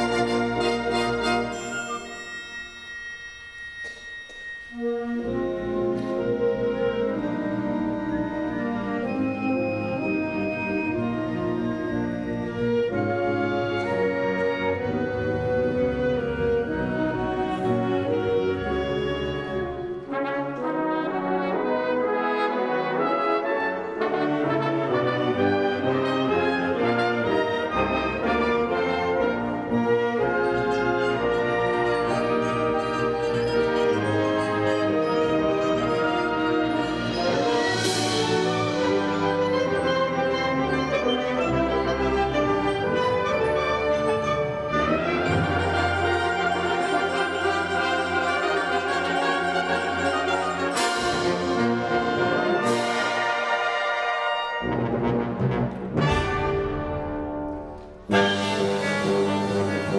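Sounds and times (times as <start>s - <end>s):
metallic percussion: 0.0s - 6.8s, 29.9s - 54.4s
wind band playing: 0.0s - 59.9s.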